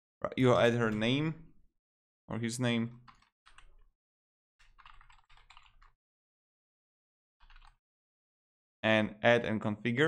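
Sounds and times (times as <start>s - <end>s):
faint typing on a keyboard: 2.9s - 3.9s, 4.6s - 6.0s, 7.4s - 7.8s.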